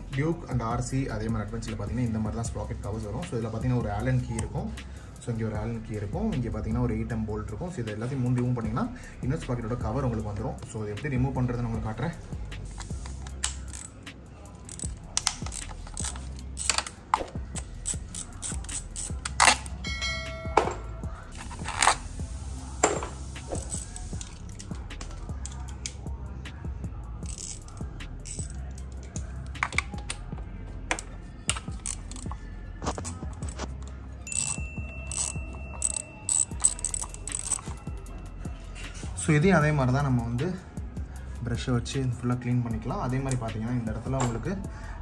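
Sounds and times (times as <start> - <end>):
ratchet wrench clicking: 12.7 - 19.8, 21.3 - 22.2, 23.0 - 26.0, 27.2 - 30.3, 30.9 - 38.2
socket driver clicking on bolts: 14.7 - 19.8, 30.9 - 33.6
short ringing chime: 19.8 - 21.0, 34.3 - 36.3
sharp metallic clinks: 34.2 - 38.1.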